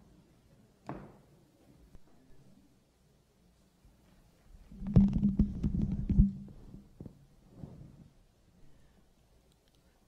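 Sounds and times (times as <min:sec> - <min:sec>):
steady low hum: 0:04.6 - 0:10.0
microphone handling rumble: 0:04.7 - 0:07.1
microphone thumps: 0:04.7 - 0:07.2.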